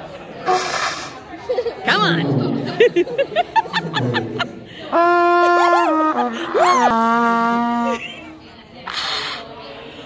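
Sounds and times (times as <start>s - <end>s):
people laughing: 1.2s - 8.6s
trumpet long held notes: 4.9s - 8.0s.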